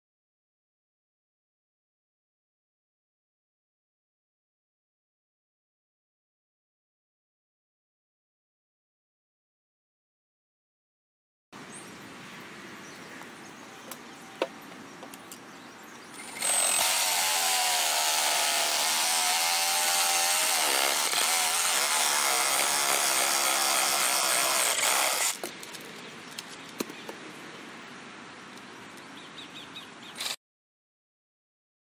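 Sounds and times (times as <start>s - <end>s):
power saw cutting wood: 16.1s - 25.5s.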